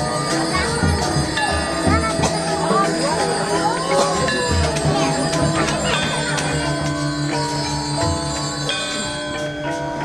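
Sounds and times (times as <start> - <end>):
metallophones ringing: 0.0 - 10.0.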